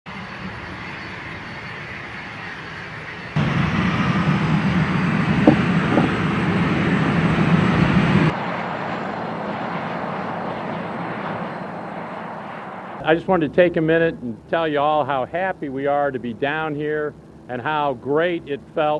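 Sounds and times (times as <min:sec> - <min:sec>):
jet engines rushing: 0:00.1 - 0:18.9.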